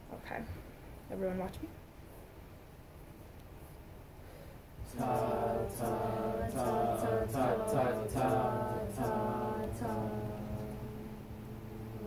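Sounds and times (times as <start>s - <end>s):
choir singing sustained chords: 4.8s - 12.0s.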